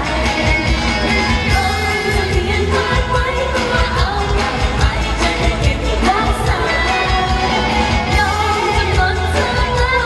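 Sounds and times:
steady drum beat: 0:00.0 - 0:10.0
woman singing into microphone: 0:00.0 - 0:10.0.

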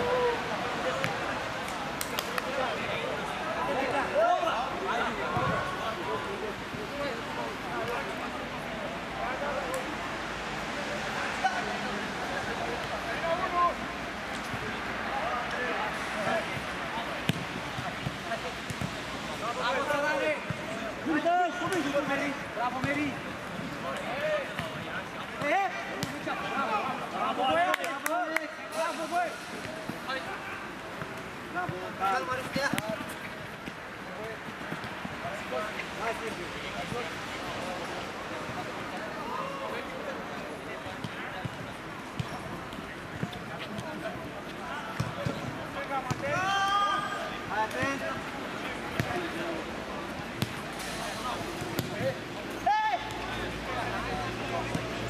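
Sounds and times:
players calling and shouting: 0:00.0 - 0:55.0.

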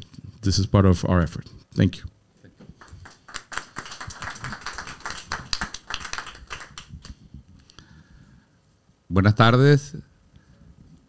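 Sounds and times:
audience applauding: 0:02.8 - 0:07.2.

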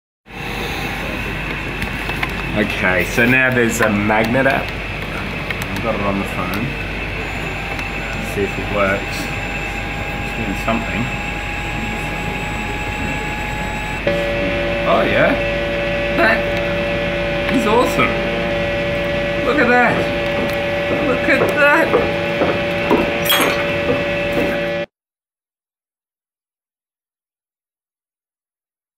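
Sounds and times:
faint high whine: 0:00.3 - 0:24.9
office background hum: 0:00.5 - 0:24.9.

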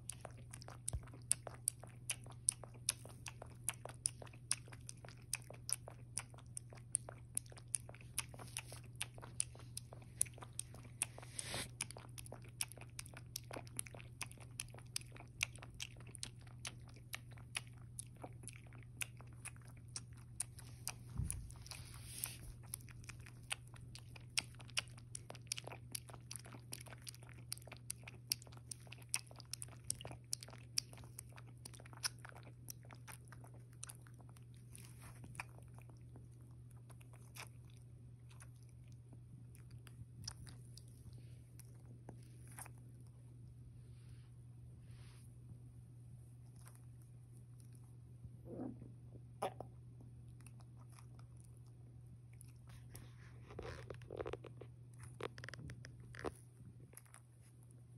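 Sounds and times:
puppy lapping milk: 0:00.0 - 0:43.1, 0:49.4 - 0:57.9
steady low hum: 0:00.0 - 0:57.9.

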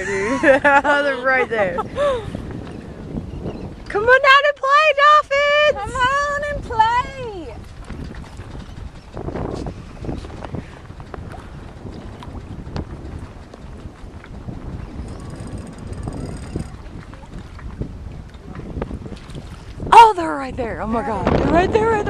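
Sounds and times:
water splashing past hull: 0:00.0 - 0:22.0
wind buffeting microphone: 0:00.0 - 0:22.0.

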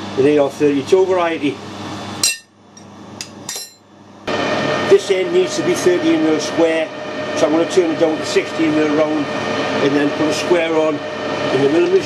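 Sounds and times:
metal lathe running: 0:04.3 - 0:12.0.

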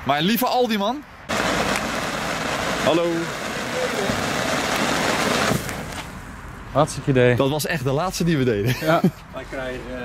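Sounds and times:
ground firework hissing: 0:01.3 - 0:06.2.

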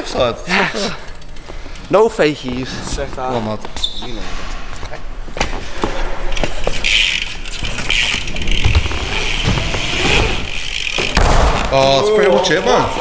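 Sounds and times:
bike thudding on ramps: 0:07.6 - 0:12.2
bike tyres hissing on ramp: 0:08.6 - 0:11.2.

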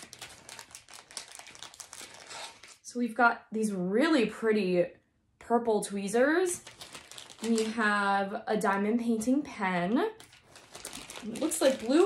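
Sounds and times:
plastic packaging crinkling: 0:00.0 - 0:02.8, 0:06.6 - 0:08.8, 0:10.2 - 0:12.0.

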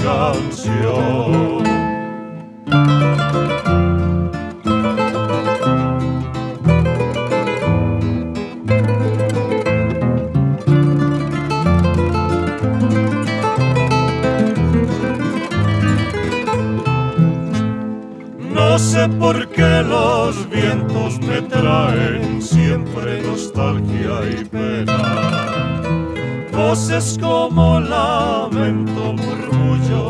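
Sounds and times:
plucked acoustic guitar melody: 0:00.0 - 0:30.0
strummed guitar: 0:00.0 - 0:30.0
bass line: 0:18.4 - 0:30.0.

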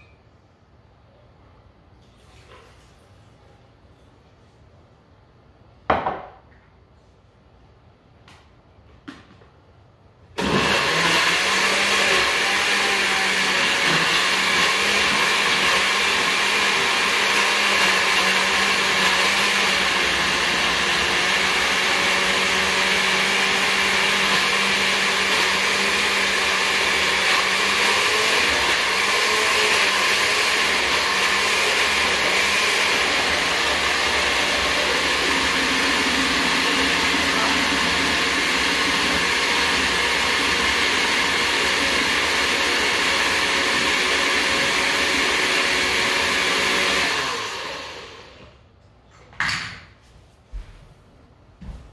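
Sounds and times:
blender running at full speed: 0:10.4 - 0:48.6.

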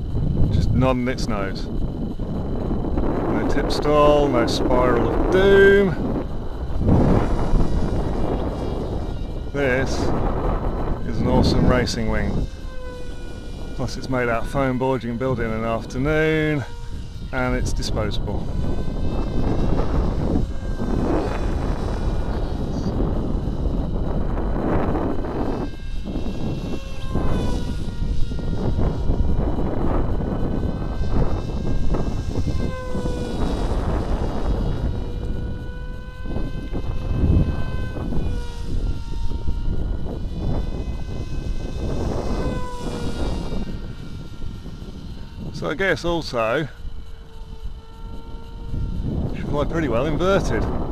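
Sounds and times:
electric motor and propeller whining: 0:00.0 - 0:50.9
low rumbling noise: 0:00.0 - 0:50.9.

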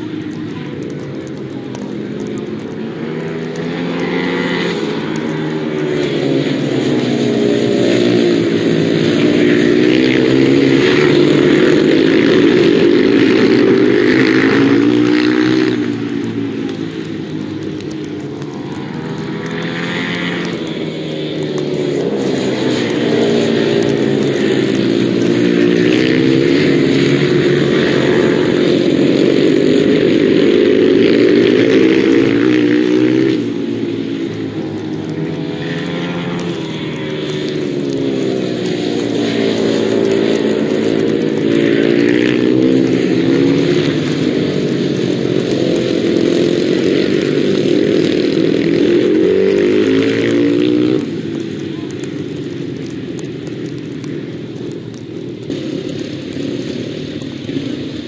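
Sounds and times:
motorcycle engines racing: 0:00.0 - 0:58.0.

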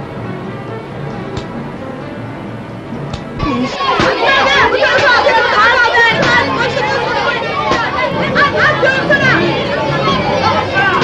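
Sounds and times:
children shouting and calling: 0:03.4 - 0:11.0.

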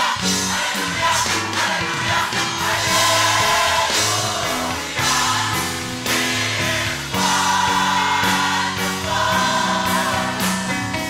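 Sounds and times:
children's choir singing a carol: 0:00.0 - 0:10.7.

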